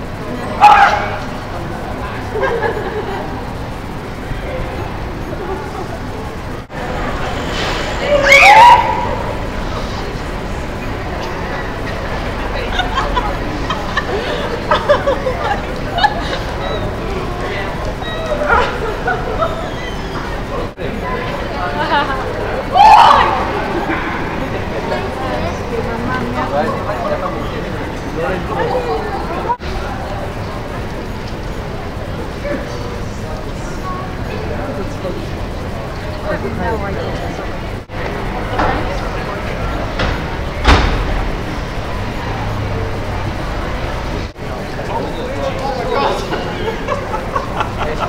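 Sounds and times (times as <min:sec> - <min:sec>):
street voices: 0:00.0 - 0:48.0.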